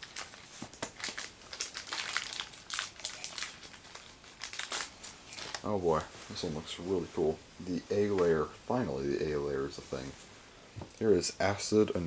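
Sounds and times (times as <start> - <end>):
plastic packaging crinkling: 0.0 - 6.9.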